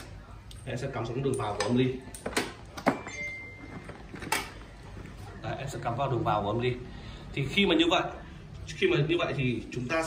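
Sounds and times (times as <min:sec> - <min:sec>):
faint high tone: 0:03.0 - 0:04.0.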